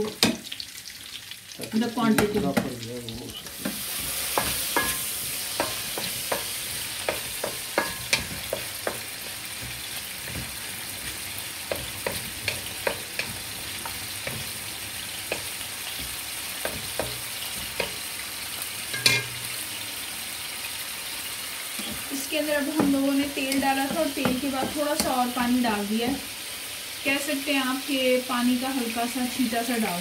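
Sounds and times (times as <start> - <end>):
meat sizzling in oil: 0.0 - 30.0
spatula knocking and scraping pan: 2.0 - 2.8, 3.6 - 18.2, 18.9 - 19.5, 21.8 - 25.4.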